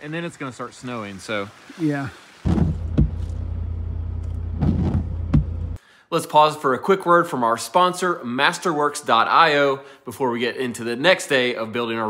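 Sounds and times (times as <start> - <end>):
short knocks: 2.5 - 3.4, 4.4 - 5.8
vehicle engine hum from inside: 2.5 - 5.8.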